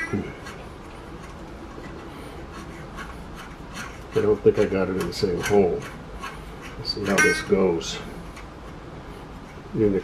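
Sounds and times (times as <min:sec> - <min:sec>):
wire saw rubbing through plastic pipe: 0:00.0 - 0:09.7.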